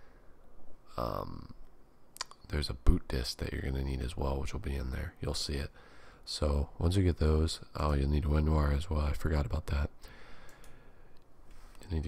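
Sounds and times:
faint computer mouse clicks: 0:10.4 - 0:11.8.

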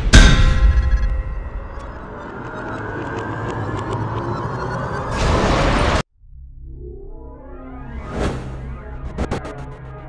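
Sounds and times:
ringing boom: 0:00.0 - 0:02.3.

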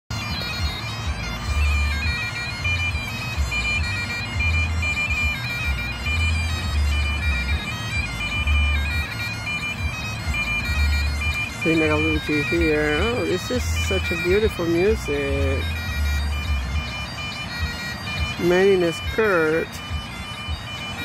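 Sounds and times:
bagpipes playing a tune: 0:00.1 - 0:21.0.

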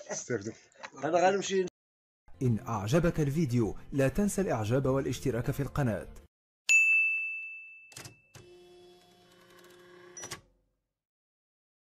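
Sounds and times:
bright ding: 0:06.7 - 0:08.3.

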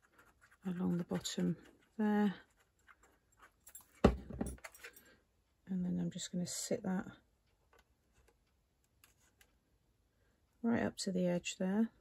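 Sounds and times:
knock on wooden tabletop: 0:04.0 - 0:04.6.

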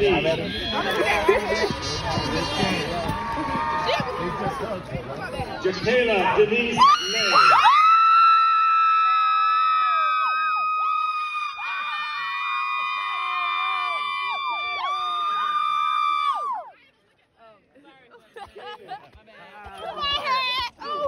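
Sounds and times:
people screaming cheering yells: 0:06.8 - 0:16.7.

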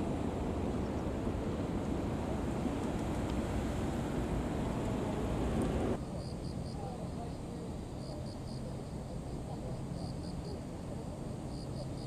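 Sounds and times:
car engine and tyre noise: 0:00.0 - 0:06.0
wind rumbling on microphone: 0:00.0 - 0:12.0.

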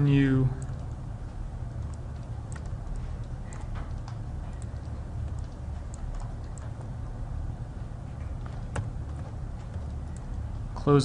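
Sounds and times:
low steady hum: 0:00.0 - 0:11.0
computer mouse clicks: 0:01.7 - 0:07.0.

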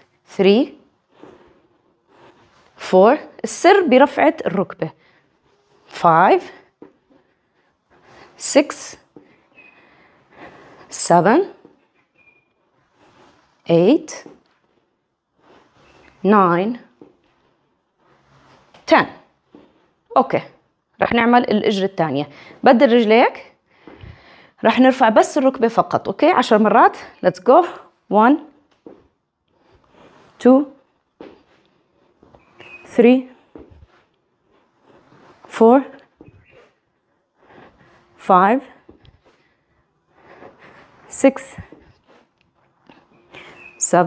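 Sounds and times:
faint body movement sounds: 0:00.0 - 0:44.0
woman speaking: 0:00.3 - 0:00.8, 0:02.8 - 0:05.0, 0:05.9 - 0:06.6, 0:08.4 - 0:09.0, 0:10.9 - 0:11.6, 0:13.7 - 0:14.4, 0:16.2 - 0:16.9, 0:18.8 - 0:19.2, 0:20.1 - 0:23.5, 0:24.6 - 0:28.6, 0:30.4 - 0:30.8, 0:32.9 - 0:33.4, 0:35.5 - 0:36.0, 0:38.2 - 0:38.8, 0:41.1 - 0:41.7, 0:43.8 - 0:44.0
faint high squeak: 0:09.5 - 0:09.9, 0:12.0 - 0:12.8, 0:32.4 - 0:33.0, 0:43.1 - 0:44.0
person speaking: 0:43.4 - 0:44.0.

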